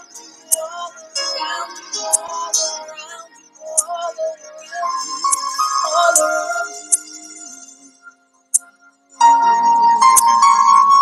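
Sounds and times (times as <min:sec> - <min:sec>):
woman singing slow worship song: 0:00.0 - 0:06.8.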